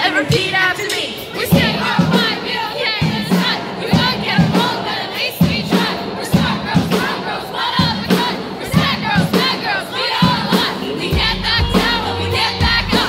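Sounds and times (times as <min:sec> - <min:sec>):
crowd singing and shouting: 0:00.0 - 0:13.0
pop band music: 0:00.0 - 0:13.0.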